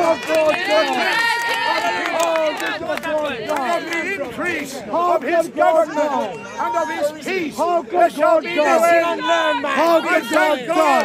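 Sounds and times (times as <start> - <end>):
man preaching with raised voice: 3.4 - 11.0.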